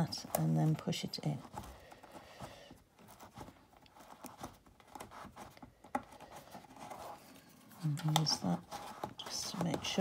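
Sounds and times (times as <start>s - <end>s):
plastic tool scratching fabric: 0.0s - 10.0s.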